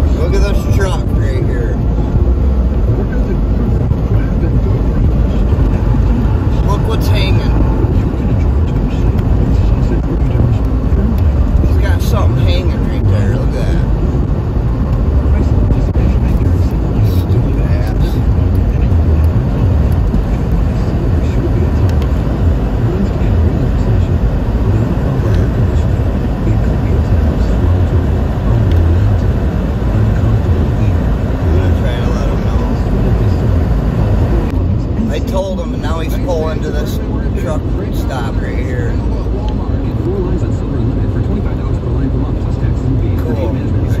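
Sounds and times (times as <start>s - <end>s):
car tyres and engine rumble: 0.0s - 44.0s.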